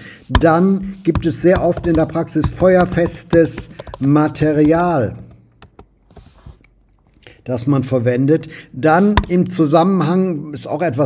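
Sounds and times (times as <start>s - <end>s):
keyboard key clicks: 1.5s - 4.9s, 9.2s - 9.4s.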